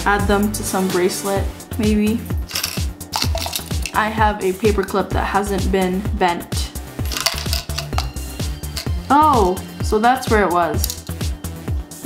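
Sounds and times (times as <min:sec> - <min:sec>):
background music with steady beat: 0:00.0 - 0:12.0
metal charms clinking in plastic container: 0:02.4 - 0:04.0, 0:07.0 - 0:09.6, 0:10.8 - 0:11.2.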